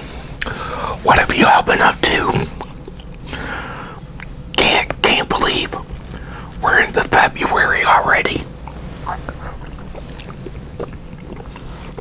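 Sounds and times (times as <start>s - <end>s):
man speaking softly: 0.9s - 2.6s, 4.6s - 5.8s, 6.6s - 8.5s
faint eating clicks: 2.2s - 3.4s, 4.1s - 12.0s.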